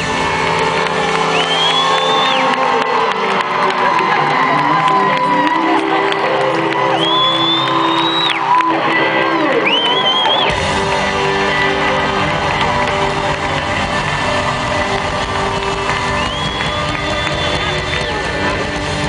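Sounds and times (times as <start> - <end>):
crowd cheering: 0.0 - 19.0
live rock band playing: 0.0 - 19.0
audience whistling: 0.3 - 3.8, 6.7 - 19.0.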